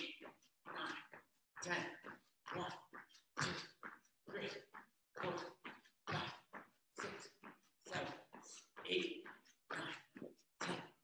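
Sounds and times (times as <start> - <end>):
man counting aloud: 0.0 - 2.9, 3.6 - 11.0.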